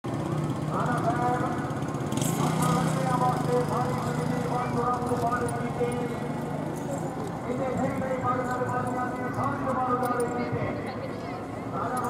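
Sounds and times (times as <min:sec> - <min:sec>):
vehicle engine running: 0:00.0 - 0:10.8
people's voices: 0:00.4 - 0:12.0.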